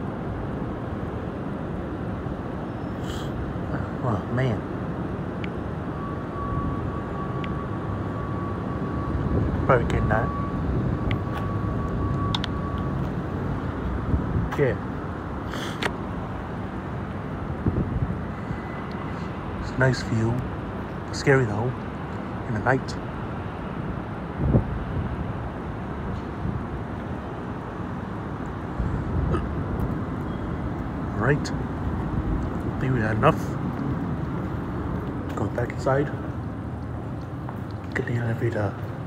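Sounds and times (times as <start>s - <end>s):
city traffic rumble: 0.0s - 39.0s
wind noise on microphone: 9.0s - 14.6s, 17.4s - 19.1s, 23.9s - 26.9s, 28.6s - 31.0s.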